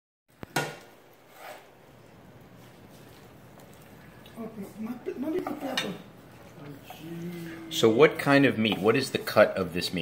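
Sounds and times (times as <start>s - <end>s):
knife slicing on wooden board: 1.3s - 1.7s
knife and dishes clinking: 5.3s - 6.1s.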